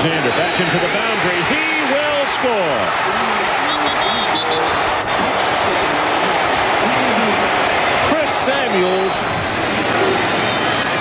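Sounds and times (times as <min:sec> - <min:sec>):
faint voices: 0:00.0 - 0:11.0
stadium crowd cheering: 0:00.0 - 0:11.0.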